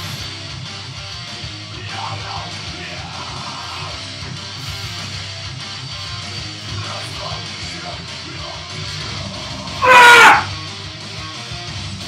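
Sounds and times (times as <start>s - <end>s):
guitar music: 0.0s - 12.0s
man yelling with effort: 9.8s - 10.5s.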